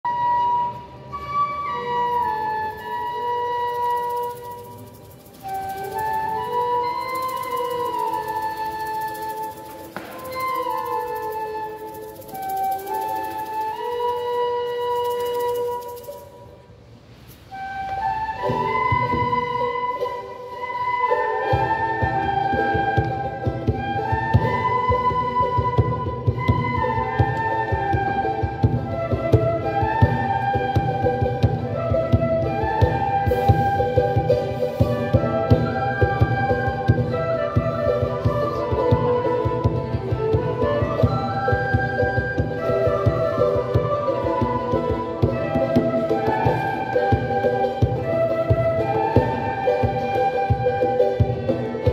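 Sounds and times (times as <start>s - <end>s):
recorder and flute melody: 0.0s - 51.9s
rhythmic low accompaniment: 18.3s - 51.9s.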